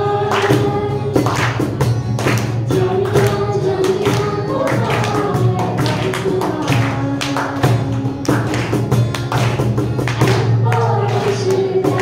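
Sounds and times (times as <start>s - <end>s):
acoustic guitar strumming: 0.0s - 12.0s
cajon beats: 0.0s - 12.0s.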